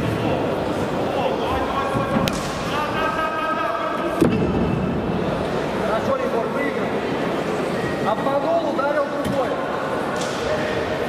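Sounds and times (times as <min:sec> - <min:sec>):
spectators chattering and shouting: 0:00.0 - 0:11.0.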